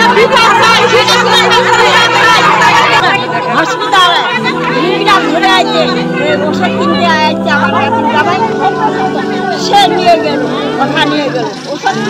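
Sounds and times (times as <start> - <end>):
women talking: 0.0 - 12.0.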